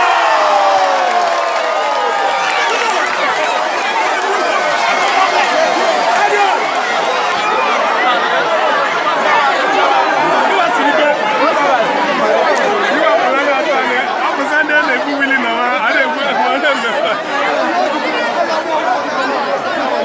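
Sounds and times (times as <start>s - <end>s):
crowd hubbub: 0.0s - 20.0s.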